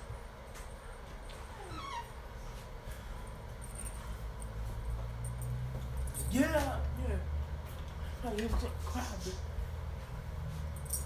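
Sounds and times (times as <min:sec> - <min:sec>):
door hinge squeaking: 0:01.6 - 0:02.2.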